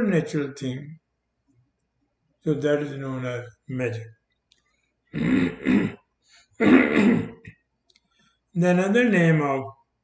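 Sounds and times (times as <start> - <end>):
man coughing: 5.2 - 6.0, 6.6 - 7.5.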